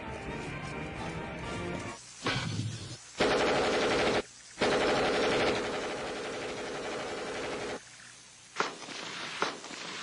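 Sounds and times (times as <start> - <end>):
automatic weapon fire: 3.2 - 7.8.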